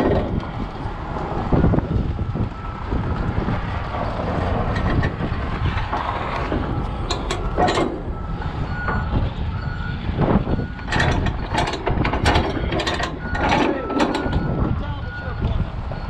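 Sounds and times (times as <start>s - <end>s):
low steady rumble: 0.0s - 16.0s
reversing alarm beeps: 6.4s - 11.8s, 12.4s - 16.0s.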